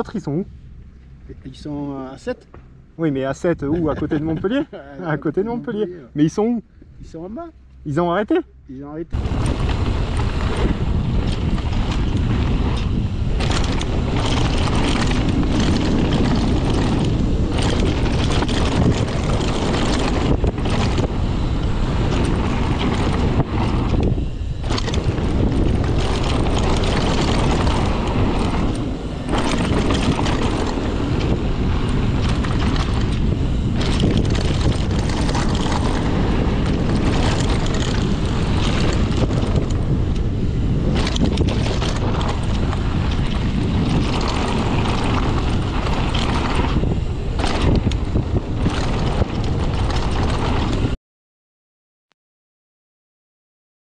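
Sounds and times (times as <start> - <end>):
wind rush on microphone: 0.0 - 8.5, 9.1 - 51.0
bike rattling: 9.2 - 51.0
bike tyres on gravel: 9.2 - 51.0.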